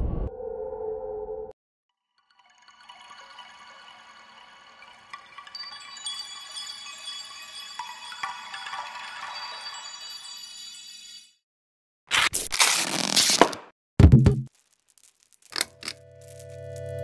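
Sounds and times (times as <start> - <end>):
chime tone: 2.4 - 11.4.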